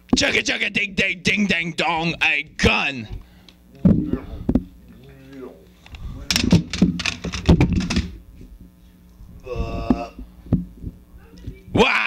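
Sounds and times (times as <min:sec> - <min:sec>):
person imitating chomping noises: 0:09.4 - 0:10.3.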